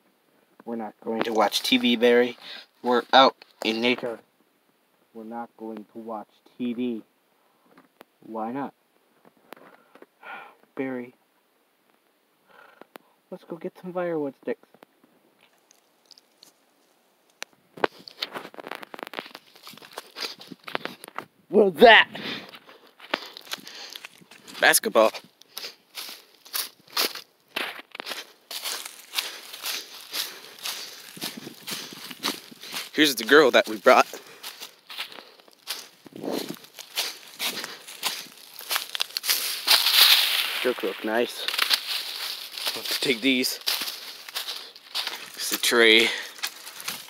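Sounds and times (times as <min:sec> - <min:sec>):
footsteps crunching dry leaves: 0:01.1 - 0:04.0, 0:17.8 - 0:21.2, 0:22.2 - 0:47.0
hand rustling leaves and twigs: 0:01.1 - 0:04.1, 0:15.4 - 0:21.2, 0:22.4 - 0:47.0.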